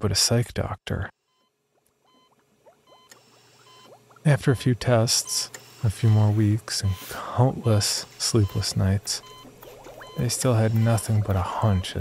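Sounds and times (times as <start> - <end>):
soft short beeping tones: 2.1 - 7.2, 8.2 - 12.0
small rising blips: 8.4 - 12.0.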